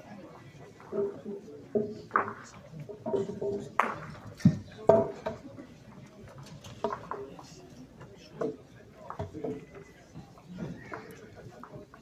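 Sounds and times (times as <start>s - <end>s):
distant overlapping chatter: 0.0s - 12.0s.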